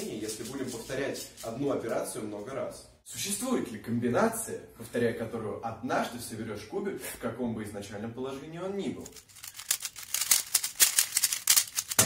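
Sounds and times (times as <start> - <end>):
puzzle cube clicking and rattling: 0.0 - 1.5, 9.0 - 12.0.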